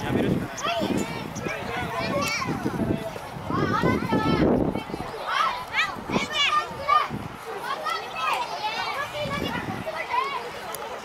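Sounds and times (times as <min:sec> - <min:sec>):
children shouting: 0:00.6 - 0:02.8, 0:03.5 - 0:10.8.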